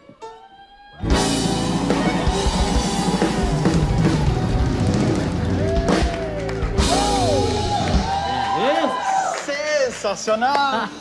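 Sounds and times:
live band playing: 1.0s - 9.4s
drum strokes: 1.1s - 8.2s.

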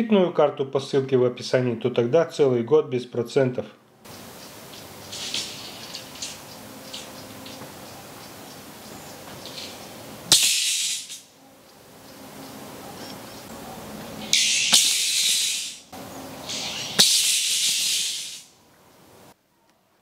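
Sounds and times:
arc welding crackling hiss: 10.3s - 11.3s, 16.5s - 18.5s.

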